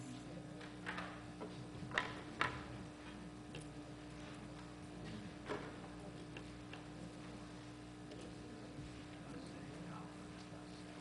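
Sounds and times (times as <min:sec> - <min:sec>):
small clicks and taps: 0:04.4 - 0:07.3.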